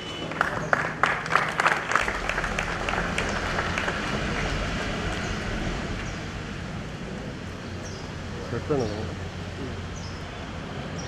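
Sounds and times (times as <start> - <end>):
audience applauding: 0.2 - 5.6.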